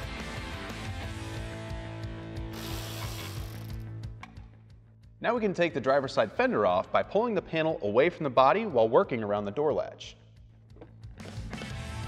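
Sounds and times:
music with steady beat: 10.2s - 12.0s.

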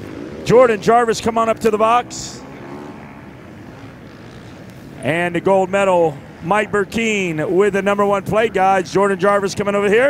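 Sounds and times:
distant motocross bikes: 0.0s - 10.0s.

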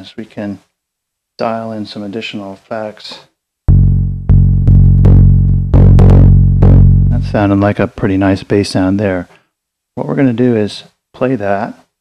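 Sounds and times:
synth bass notes: 3.7s - 7.8s.

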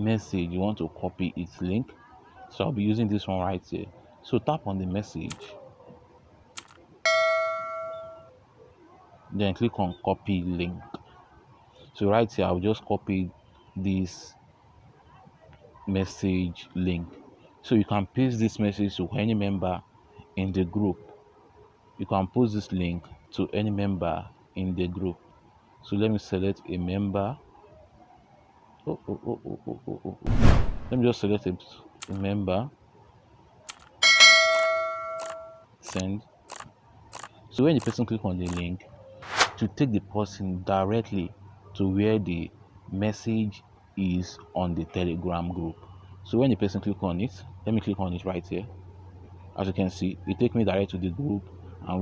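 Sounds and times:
bright bell chime: 7.1s - 8.3s, 34.0s - 35.6s.

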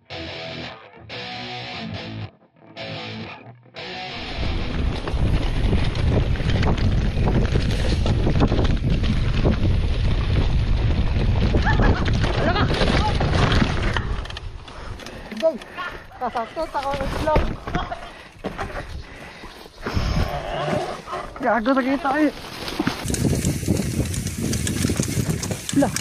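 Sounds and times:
bike trail rumble: 4.1s - 26.0s
wind on microphone: 4.4s - 14.2s, 22.9s - 26.0s
tyres rumbling on dirt: 4.4s - 14.4s
bike crash knocks and clatter: 11.4s - 14.2s.

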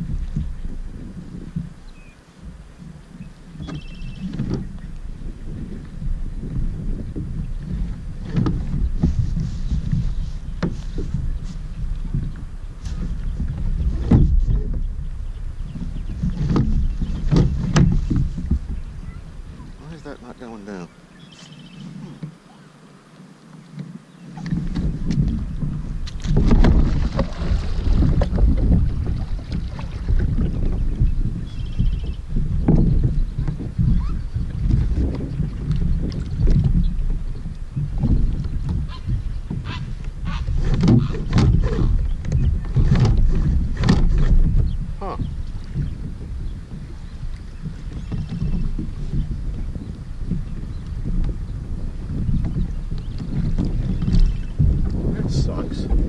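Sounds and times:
water lapping at kayak hull: 0.0s - 56.0s
wind rumbling on microphone: 0.0s - 56.0s
knocks and splashes: 3.5s - 4.9s, 5.5s - 20.1s, 24.4s - 56.0s.

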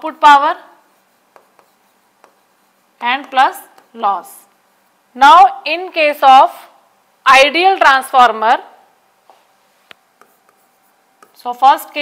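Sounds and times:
pen tapping on screen: 1.3s - 2.4s, 3.0s - 4.0s, 9.9s - 11.4s.

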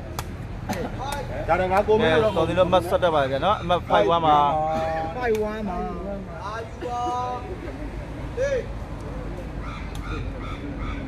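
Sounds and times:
bird calling: 9.6s - 11.0s.

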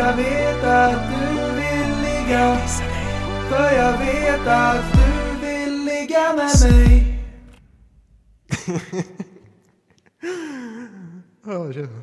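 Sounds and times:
man singing: 0.0s - 7.5s.

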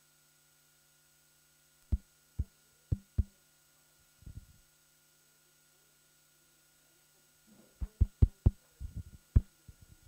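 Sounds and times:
faint sound system hum: 0.0s - 10.0s
microphone handling thumps and knocks: 4.2s - 4.6s, 7.8s - 10.0s.

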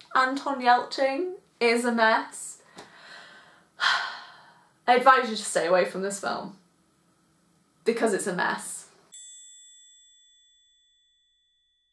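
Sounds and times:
bright bell ding: 9.1s - 11.8s.

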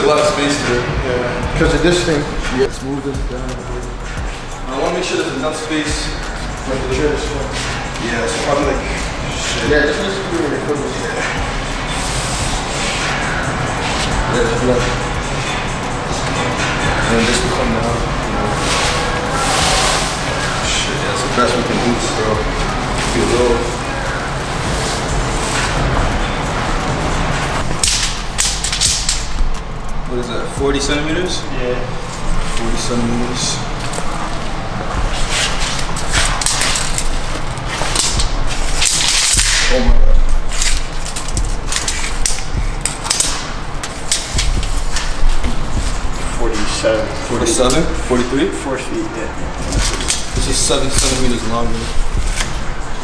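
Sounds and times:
plastic wrapping crinkling: 33.8s - 47.7s.

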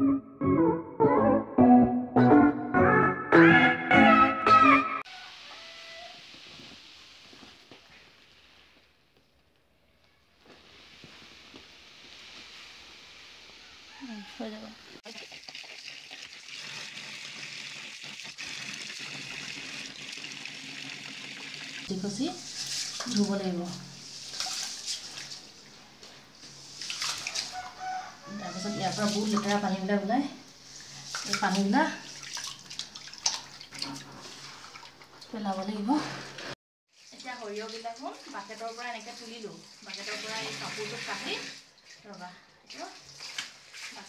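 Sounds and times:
tap water pouring into basin: 15.0s - 23.3s, 24.0s - 28.0s, 30.8s - 35.4s, 37.0s - 42.1s
seeds stirred by hand: 22.3s - 25.2s
hands sloshing seeds in water: 22.4s - 25.5s, 26.6s - 27.6s, 30.7s - 35.0s
water splash: 26.7s - 27.6s, 31.0s - 35.0s.

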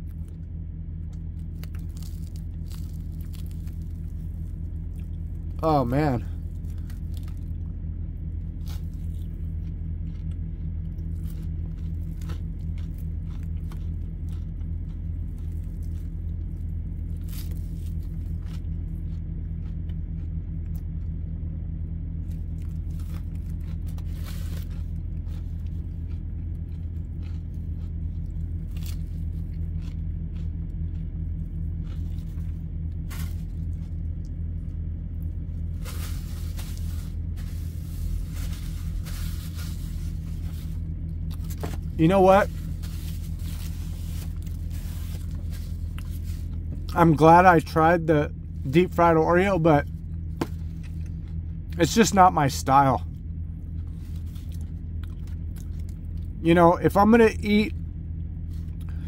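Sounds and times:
low machine hum: 0.0s - 59.0s
food and paper rustling: 22.9s - 25.8s, 35.6s - 46.9s, 53.8s - 55.9s.

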